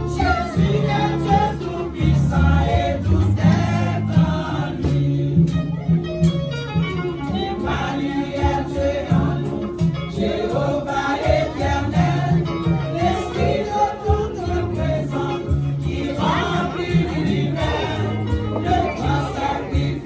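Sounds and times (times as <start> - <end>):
women's choir singing a hymn: 0.0 - 5.6, 7.6 - 20.0.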